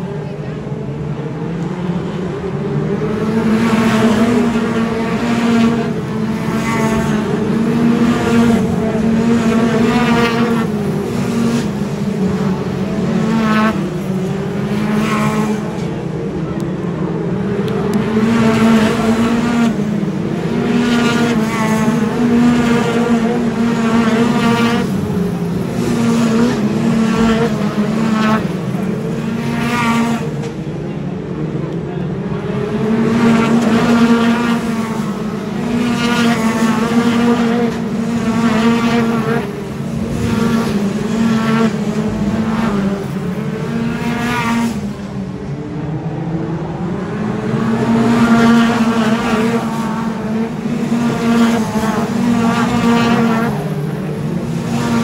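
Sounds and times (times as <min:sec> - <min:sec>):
race car engines revving: 0:00.0 - 0:55.0.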